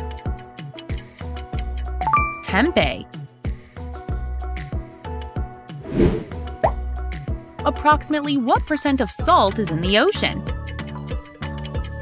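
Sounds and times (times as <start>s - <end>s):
upbeat background music: 0.5s - 4.9s, 5.8s - 12.0s
whoosh transition effect: 5.8s - 6.4s.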